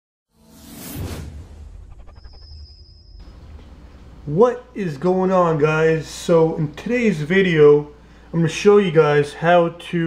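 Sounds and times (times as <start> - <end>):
whoosh: 0.3 - 3.6
thin high ringing tone: 1.9 - 4.0.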